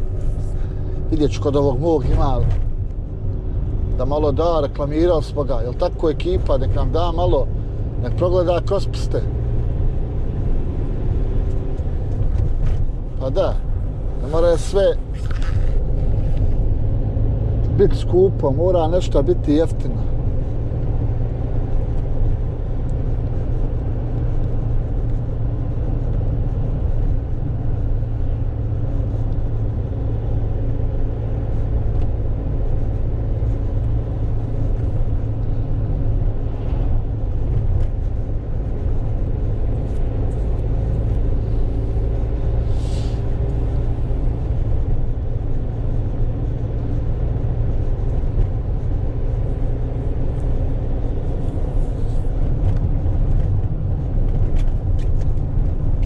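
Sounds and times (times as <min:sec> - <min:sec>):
van engine and road rumble: 0:00.0 - 0:56.0.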